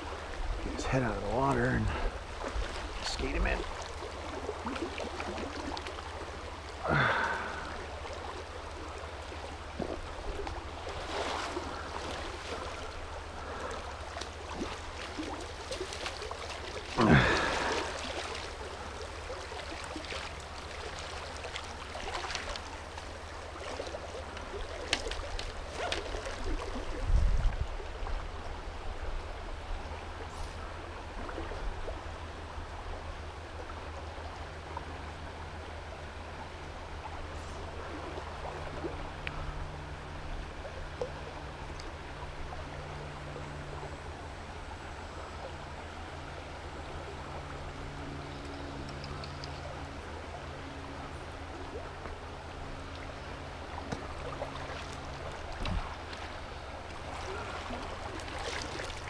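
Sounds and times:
river current rushing: 0:00.0 - 0:27.1, 0:27.7 - 0:59.0.

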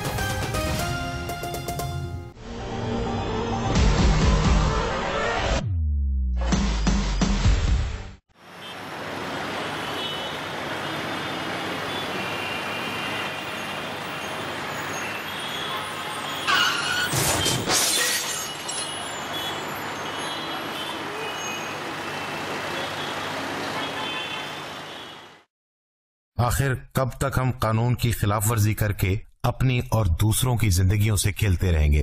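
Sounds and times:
street traffic: 0:08.3 - 0:25.5
brief rising screech: 0:16.4 - 0:17.6.

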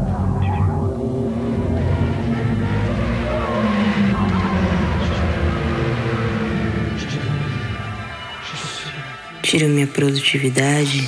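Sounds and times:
gliding tones: 0:00.0 - 0:09.8
low rumbling drone: 0:00.0 - 0:09.8.

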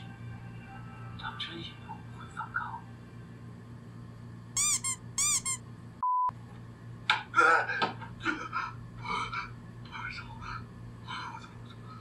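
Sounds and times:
high arching squeaks: 0:04.6 - 0:05.6
censor bleep: 0:06.0 - 0:06.3.

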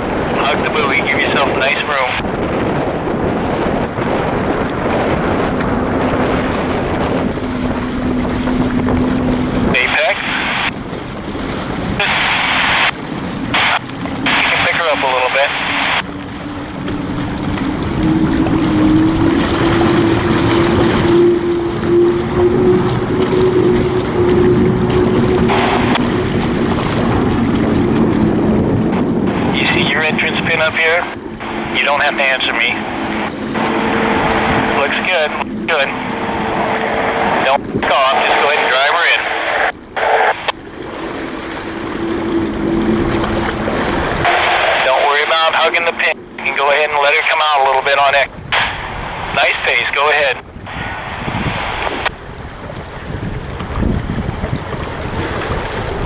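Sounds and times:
turbine engine roaring and whining: 0:00.0 - 0:56.0.

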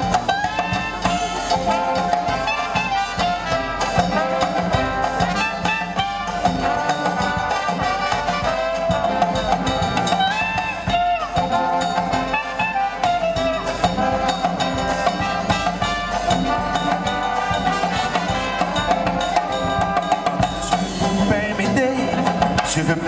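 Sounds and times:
jazz band playing: 0:00.0 - 0:23.0
steady drum beat: 0:00.0 - 0:23.0.

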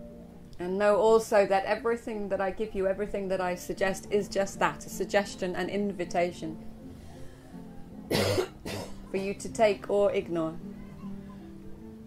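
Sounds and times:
soft background music: 0:00.0 - 0:12.0
person coughing: 0:08.1 - 0:09.0.

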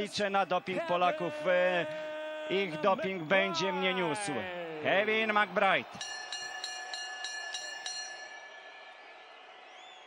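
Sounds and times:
boxing ring bell struck rapidly: 0:06.0 - 0:08.7.

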